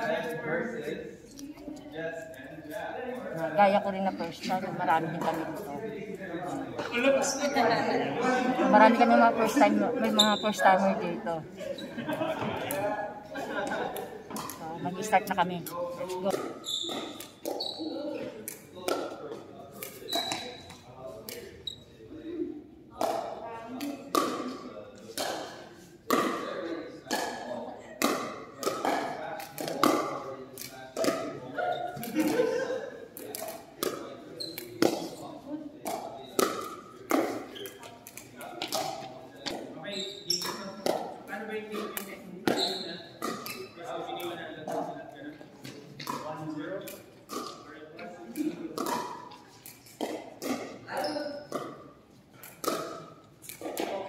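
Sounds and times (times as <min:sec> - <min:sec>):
voices echoing in a hall: 0:00.0 - 0:54.0.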